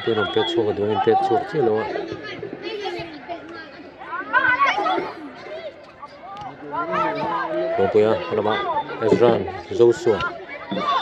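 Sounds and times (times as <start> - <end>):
voices calling and chattering: 0.0 - 11.0.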